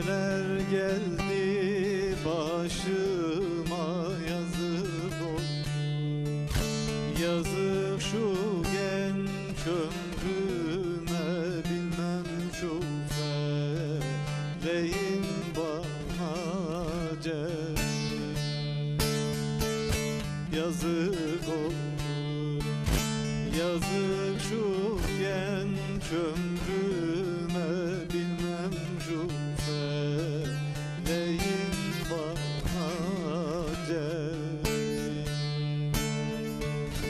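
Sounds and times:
long-necked lute plucked: 0:00.0 - 0:37.0
man singing folk song: 0:00.0 - 0:37.0.

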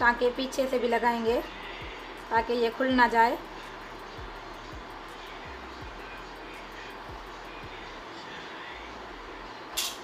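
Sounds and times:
machine or fan running: 0:00.0 - 0:10.0.

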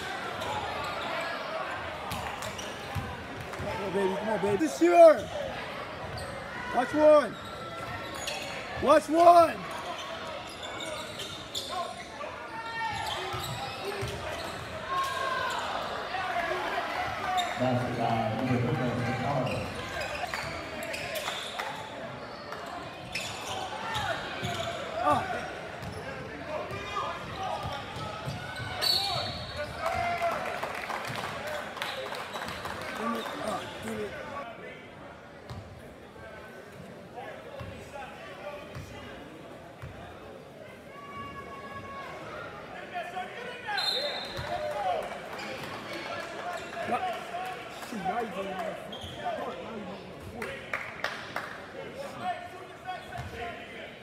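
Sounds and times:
shouts and chatter: 0:03.6 - 0:31.9, 0:40.7 - 0:49.8.

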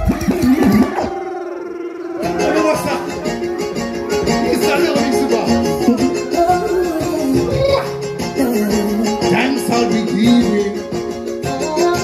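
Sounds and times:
reggae music with bass: 0:00.0 - 0:12.0.

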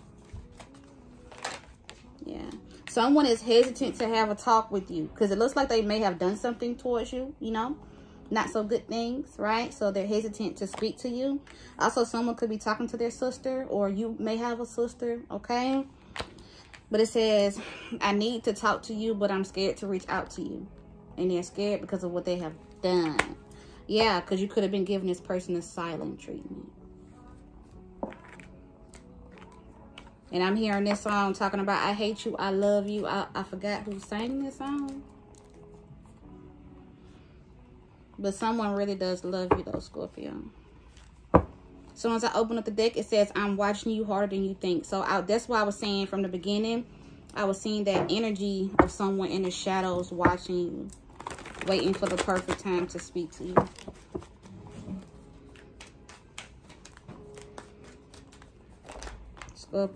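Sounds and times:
soft background music: 0:00.0 - 0:59.9
paper cards being shuffled: 0:00.1 - 0:02.1, 0:51.1 - 0:59.6
paper cards clicking and sliding: 0:55.6 - 0:59.5.

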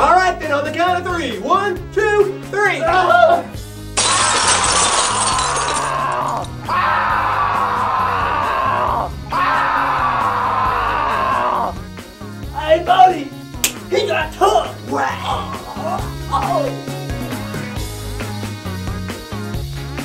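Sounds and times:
window glass shattering: 0:04.0 - 0:06.7
person screaming: 0:04.8 - 0:11.8, 0:15.0 - 0:16.8.

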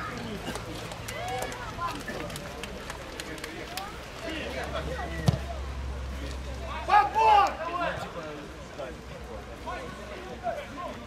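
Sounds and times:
players shouting: 0:06.3 - 0:08.3.

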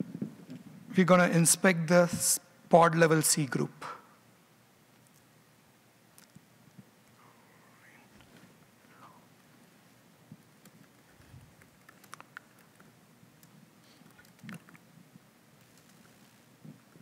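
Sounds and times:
computer keyboard typing: 0:11.6 - 0:13.5.

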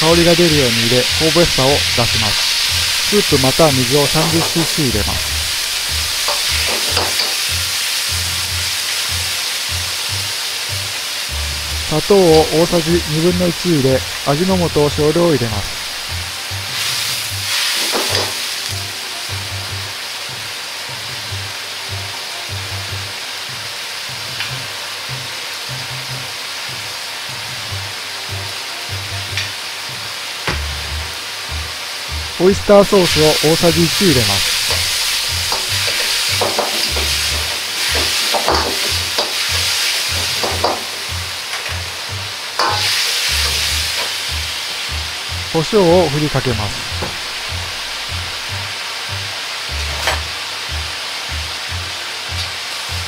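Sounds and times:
meat sizzling in a wok: 0:00.0 - 0:14.4, 0:15.7 - 0:53.0
background music with low bass: 0:00.0 - 0:53.0
metal ladle clanking against wok: 0:42.6 - 0:42.9.

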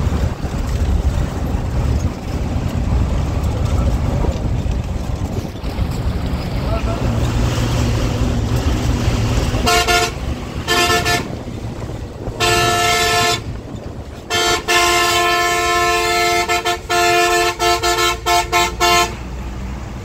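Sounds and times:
bus engine running: 0:00.0 - 0:20.0
bus horn honking: 0:09.5 - 0:11.6, 0:12.2 - 0:19.4.

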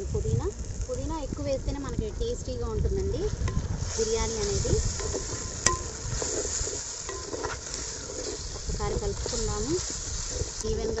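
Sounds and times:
vegetables sizzling in hot oil: 0:00.0 - 0:11.0
wooden spatula stirring in pot: 0:02.9 - 0:11.0.

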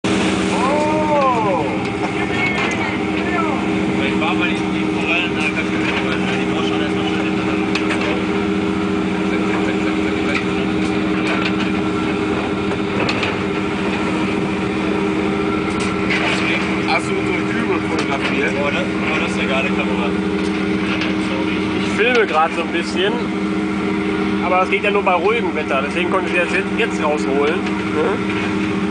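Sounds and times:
boat engine droning: 0:00.0 - 0:28.9
gulls calling: 0:00.1 - 0:20.8.

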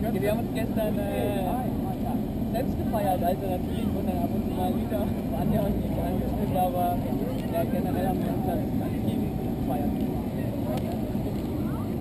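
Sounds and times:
faint voices talking: 0:00.0 - 0:12.0
steady low rumble: 0:00.0 - 0:12.0.

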